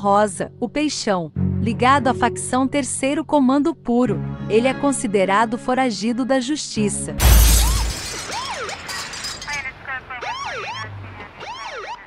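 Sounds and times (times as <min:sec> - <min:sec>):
shattering glass effect: 0:07.2 - 0:09.7
police sirens wailing: 0:10.0 - 0:12.0.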